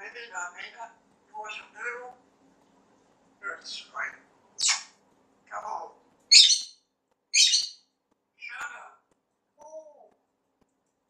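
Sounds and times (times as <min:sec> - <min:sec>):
parrot calling: 0:03.6 - 0:05.0, 0:06.3 - 0:06.8, 0:07.4 - 0:07.8.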